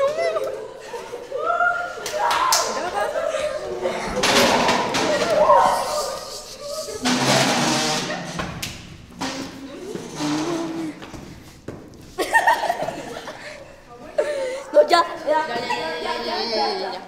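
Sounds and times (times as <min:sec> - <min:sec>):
young voices calling out: 0:00.0 - 0:07.1, 0:14.1 - 0:17.0.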